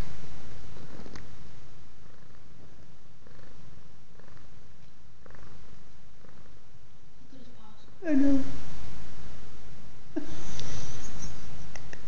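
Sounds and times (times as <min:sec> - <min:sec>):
cat purring: 0:00.0 - 0:12.0.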